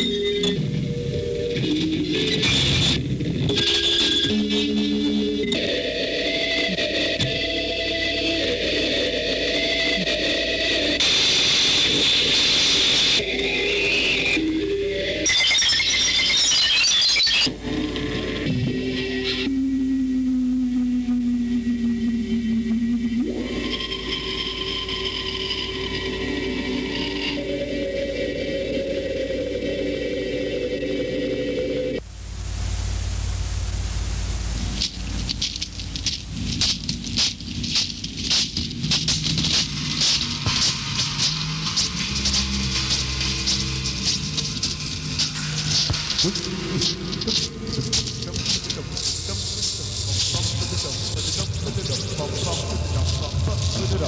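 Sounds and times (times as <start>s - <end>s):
harsh noise burst: 8.2s - 17.9s, 31.9s - 54.0s
hiss: 11.0s - 14.5s, 32.1s - 53.4s
low hum: 17.5s - 54.0s
fast irregular crackling: 33.7s - 54.0s.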